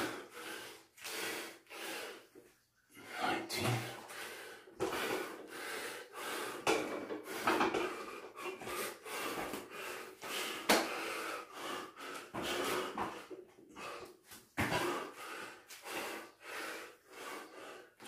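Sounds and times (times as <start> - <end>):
man breathing hard and gasping: 0.0 - 18.0.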